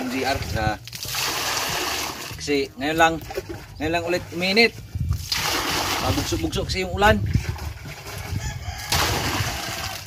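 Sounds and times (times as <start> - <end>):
water pouring into plastic drum: 0.0 - 2.6, 5.2 - 6.6, 7.2 - 10.0.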